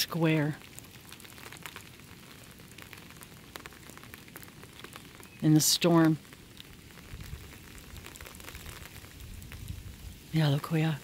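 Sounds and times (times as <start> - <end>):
faint steady hiss: 0.0 - 11.0
light crackling: 0.0 - 11.0
person speaking: 5.4 - 6.2, 10.3 - 11.0.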